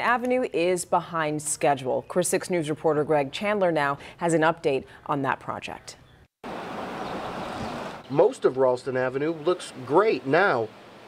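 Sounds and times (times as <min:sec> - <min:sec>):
steady outdoor rushing hiss: 0:06.4 - 0:11.0.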